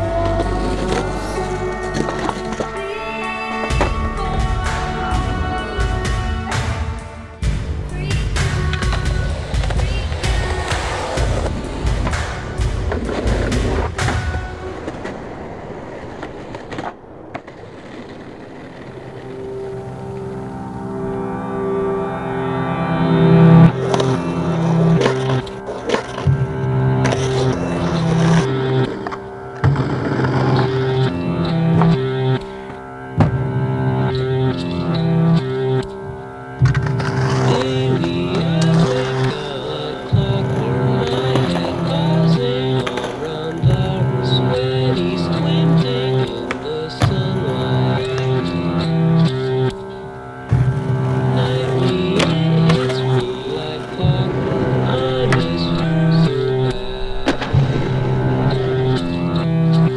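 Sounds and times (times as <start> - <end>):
music track: 0.0 - 16.2, 17.8 - 59.9
skateboard wheels rolling on concrete: 0.0 - 59.9.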